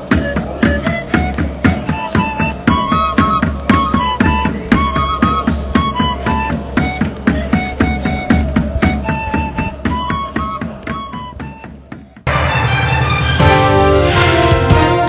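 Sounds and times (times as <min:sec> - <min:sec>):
fast beat music with high melody: 0:12.3 - 0:15.0.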